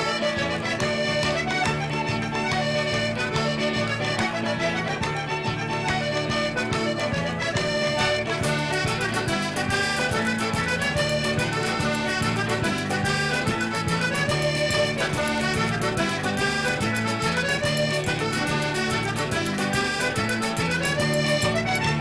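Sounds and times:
band keeping steady beat: 0:00.0 - 0:22.0
button accordion dance tune: 0:00.0 - 0:22.0.

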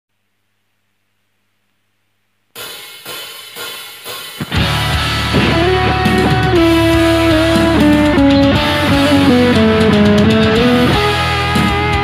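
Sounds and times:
sharp cymbal strikes: 0:02.6 - 0:08.7.

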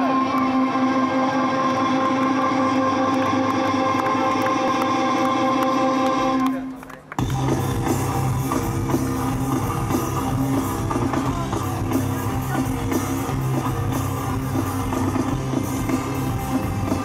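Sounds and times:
distorted guitar: 0:00.0 - 0:17.0
drums: 0:07.0 - 0:17.0
rock band playing live: 0:07.2 - 0:17.0.

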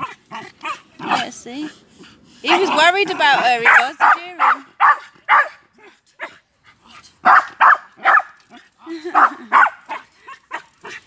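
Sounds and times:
dog barking: 0:02.6 - 0:05.6, 0:07.2 - 0:08.3, 0:09.2 - 0:10.7.

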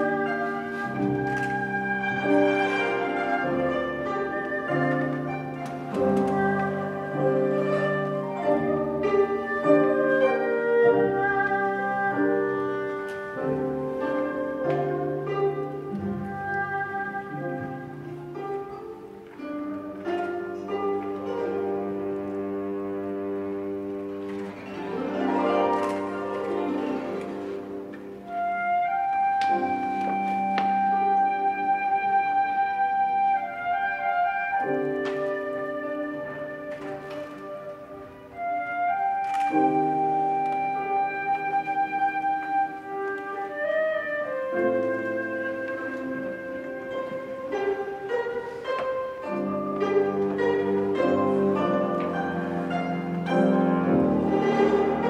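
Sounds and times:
bowed erhu: 0:00.0 - 0:55.0
cello: 0:00.0 - 0:55.0
piano: 0:00.0 - 0:55.0
plucked guzheng: 0:00.0 - 0:55.0
slow chamber ensemble music: 0:00.0 - 0:55.0.

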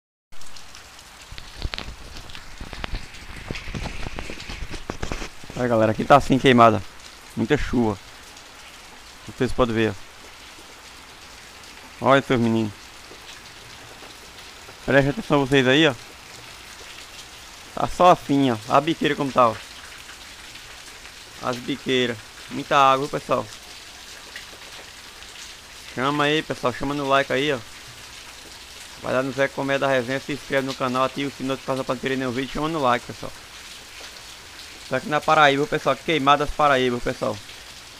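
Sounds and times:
heavy rain falling: 0:00.4 - 0:37.9
water pouring off roof splashing: 0:00.4 - 0:37.9.

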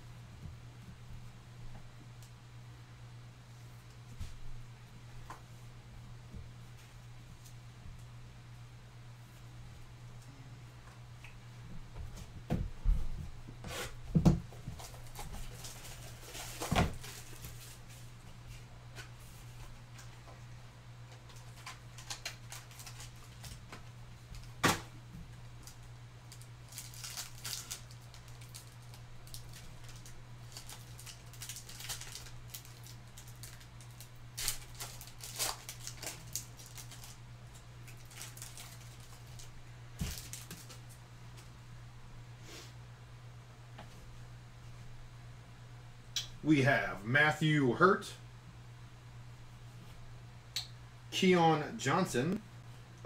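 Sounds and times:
steady low hum: 0:00.0 - 0:53.0
cards clicking and rustling: 0:21.1 - 0:23.8, 0:25.7 - 0:37.2.

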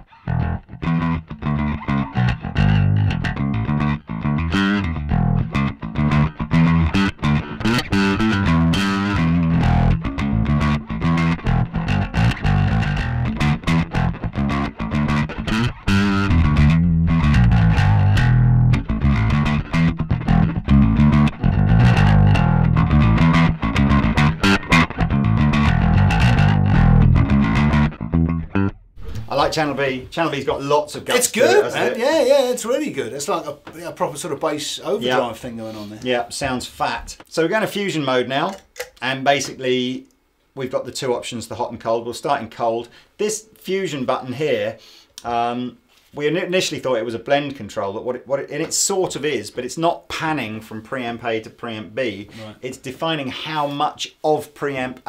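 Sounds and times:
overdriven electric bass: 0:00.0 - 0:29.3.

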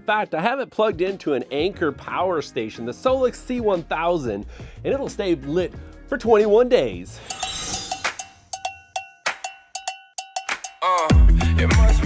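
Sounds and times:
cowbell-like metallic hits: 0:07.2 - 0:10.8.

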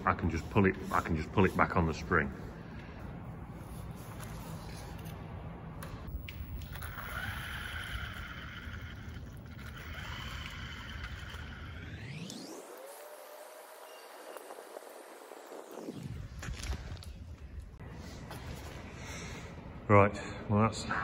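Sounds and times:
toy car electric motor whining: 0:06.4 - 0:15.9.

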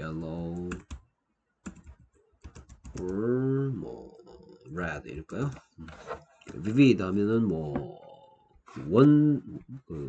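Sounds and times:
computer keyboard typing: 0:01.6 - 0:03.2.

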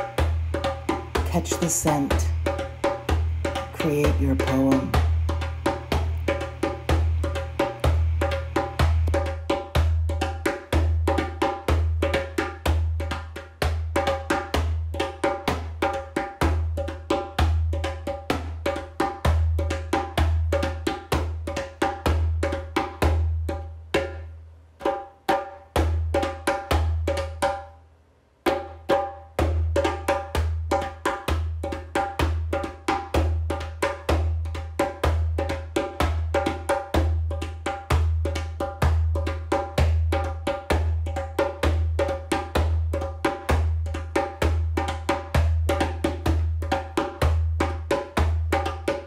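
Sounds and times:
pulsing low drum: 0:00.0 - 0:12.0
woody pitched percussion strikes: 0:00.0 - 0:12.0.

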